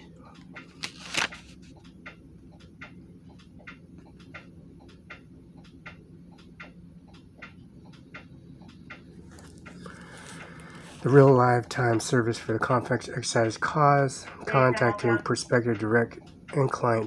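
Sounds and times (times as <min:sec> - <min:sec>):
low steady hum: 0:00.0 - 0:17.0
mechanical ticking: 0:01.7 - 0:09.8, 0:10.4 - 0:17.0.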